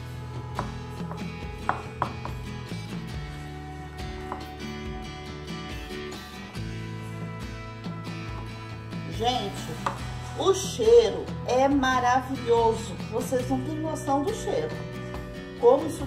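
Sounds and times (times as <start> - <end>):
background music low notes: 0.0 - 16.0.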